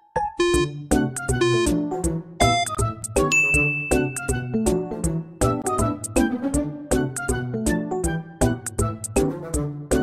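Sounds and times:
cheerful music with steady beat: 0:00.1 - 0:10.0
bell-like ding: 0:03.3 - 0:04.4.

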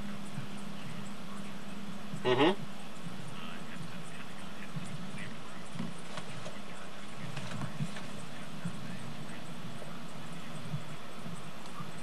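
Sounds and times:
faint indistinct voices: 0:00.0 - 0:12.0
steady low hum: 0:00.0 - 0:12.0.

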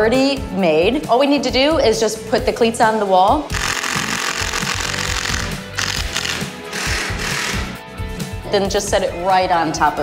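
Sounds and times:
background music: 0:00.0 - 0:10.0
power drill driving screws: 0:03.5 - 0:07.8.

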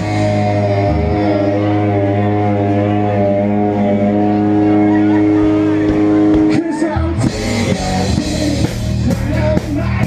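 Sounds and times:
rock band drums and guitar: 0:00.0 - 0:10.0.

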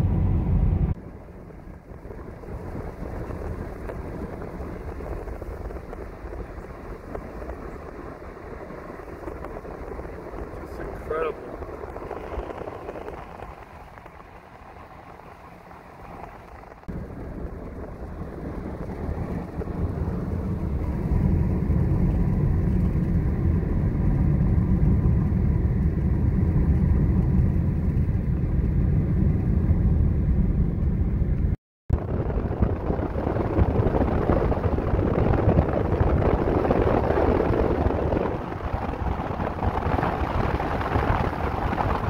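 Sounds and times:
car road and wind noise: 0:00.0 - 0:42.0
deep rumble: 0:00.0 - 0:42.0.

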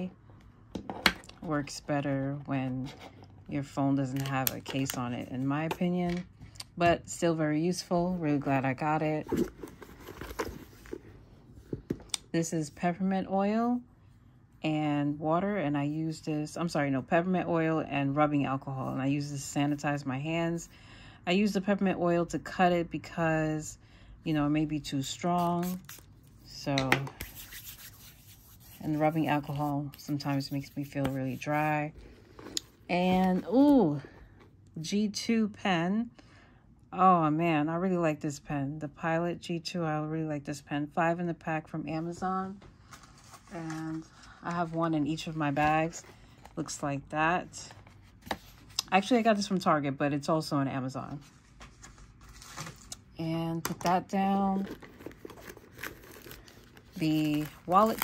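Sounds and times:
hands rubbing together: 0:27.2 - 0:31.4
plastic wrapper crinkling: 0:54.6 - 0:58.0.

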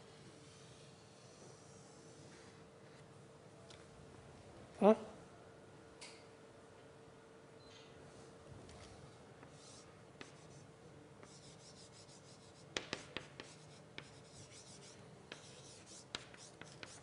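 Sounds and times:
chalk scratching on blackboard: 0:09.4 - 0:17.0
chalk tapping on board: 0:09.4 - 0:17.0.

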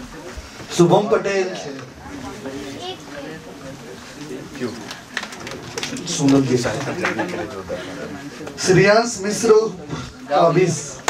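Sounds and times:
indistinct voices talking quietly: 0:00.0 - 0:11.0.

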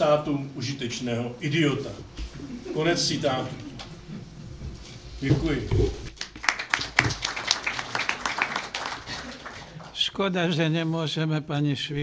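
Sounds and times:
audience applauding: 0:06.2 - 0:10.0.

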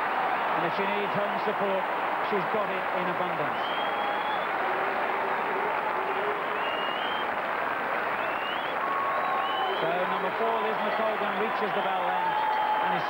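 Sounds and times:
crowd applauding and cheering: 0:00.0 - 0:13.0
high calls from crowd: 0:08.0 - 0:13.0.

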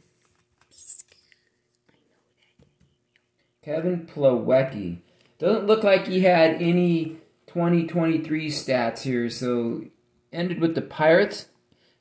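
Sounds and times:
cards being handled: 0:00.0 - 0:01.4.

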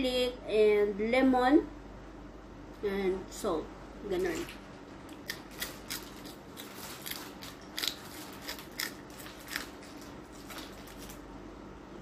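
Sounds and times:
teeth crunching chili pepper: 0:05.1 - 0:10.2.

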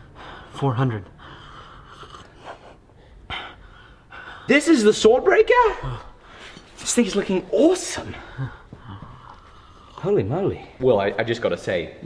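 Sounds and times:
person sipping and breathing: 0:01.3 - 0:03.2, 0:08.4 - 0:10.1.

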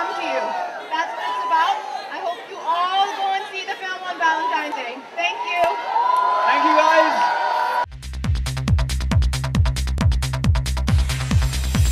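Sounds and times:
crowd chatter: 0:00.0 - 0:07.3.

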